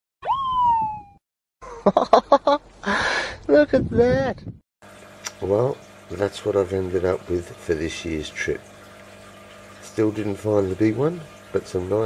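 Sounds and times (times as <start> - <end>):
whistle-like sweeping tone: 0.2 - 1.2
man laughing: 1.6 - 3.3.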